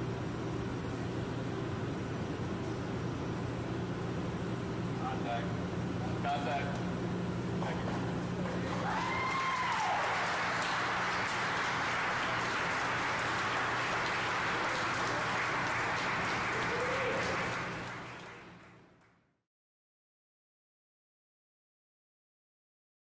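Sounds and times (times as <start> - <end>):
low electrical hum: 0.0 - 19.2
group applause: 7.6 - 19.1.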